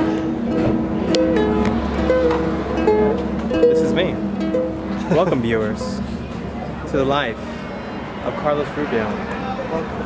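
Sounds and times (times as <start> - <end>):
ukulele plucked notes: 0.0 - 6.9.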